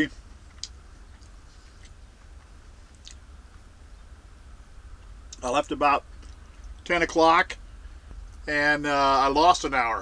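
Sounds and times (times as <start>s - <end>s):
steady low hum: 0.0s - 10.0s
person chewing food: 0.5s - 3.2s.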